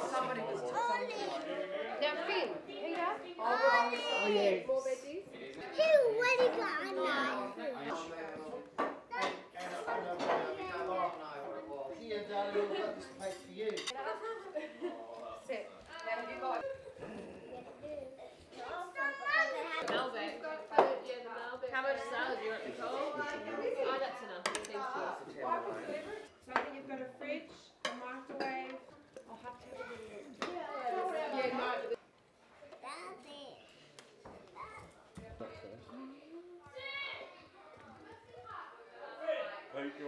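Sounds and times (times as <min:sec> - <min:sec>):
children talking and calling out: 0:00.5 - 0:01.6, 0:03.3 - 0:04.7, 0:05.6 - 0:07.9, 0:17.5 - 0:20.0, 0:32.6 - 0:35.2, 0:36.2 - 0:38.9
cutlery clinking on plates: 0:13.2 - 0:14.0.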